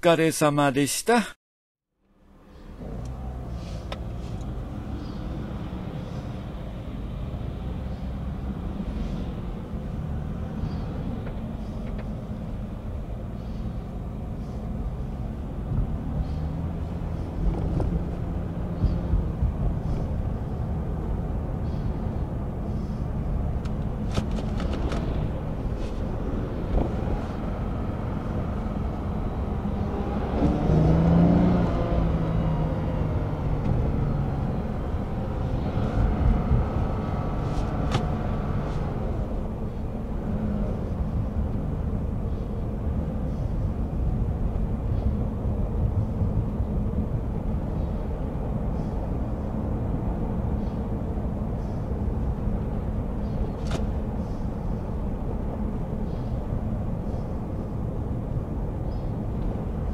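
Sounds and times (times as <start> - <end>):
car road and engine rumble: 1.9 - 59.9.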